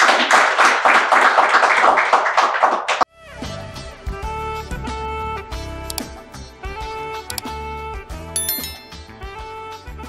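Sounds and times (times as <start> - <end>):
audience clapping: 0.0 - 3.1.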